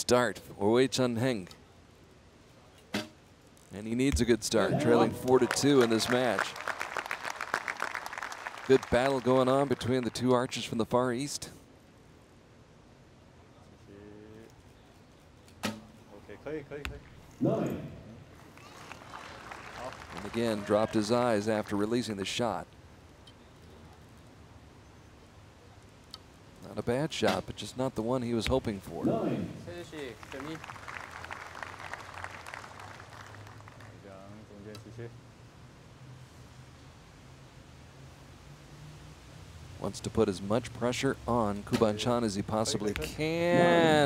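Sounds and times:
arrow striking target: 2.9 - 3.2, 15.6 - 16.0
person speaking: 3.8 - 6.4, 42.4 - 44.0
audience applause: 4.7 - 10.7, 18.4 - 21.9, 29.7 - 34.0.

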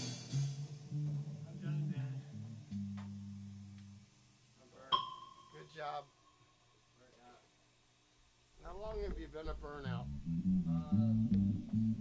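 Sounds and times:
sharp strike with ringing tone: 4.9 - 5.7.

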